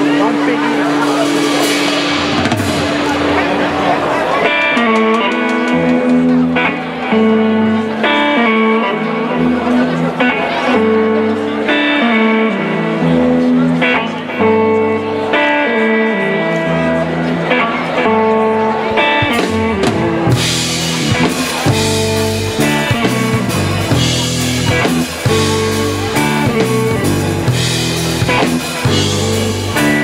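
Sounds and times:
drum kit with cymbals: 0.0 - 6.7, 19.2 - 30.0
bass guitar: 0.0 - 30.0
electric guitar: 0.0 - 30.0.

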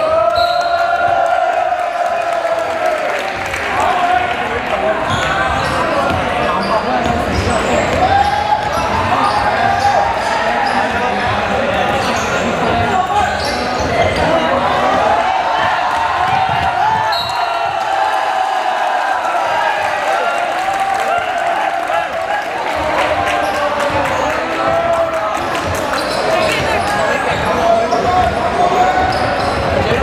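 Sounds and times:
basketball bouncing on wooden court: 5.1 - 6.4, 15.6 - 17.9
crowd shouting: 12.6 - 30.0.

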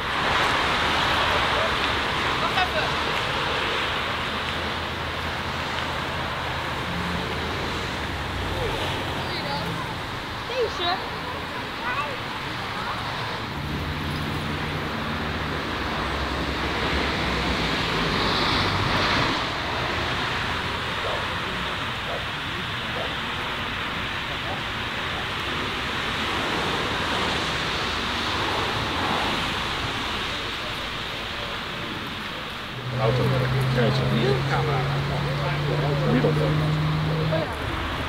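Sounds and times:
faint background voices: 0.2 - 38.0.

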